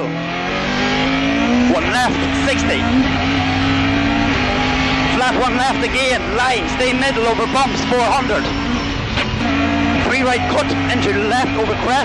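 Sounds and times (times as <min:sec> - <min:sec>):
rally car engine at high revs: 0:00.0 - 0:12.0.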